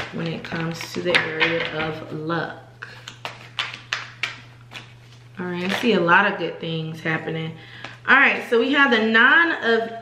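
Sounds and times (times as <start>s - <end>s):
cards being shuffled: 2.9s - 6.0s.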